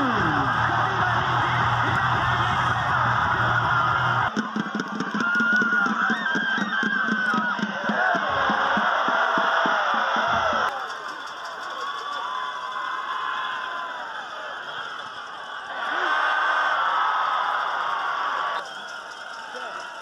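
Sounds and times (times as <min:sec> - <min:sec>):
steady drumbeat: 0:00.0 - 0:10.7
music: 0:00.0 - 0:11.8
crowd cheering and yelling: 0:00.0 - 0:20.0.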